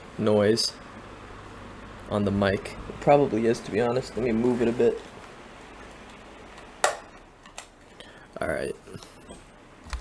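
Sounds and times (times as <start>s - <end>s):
electric fan hissing: 0.0s - 10.0s.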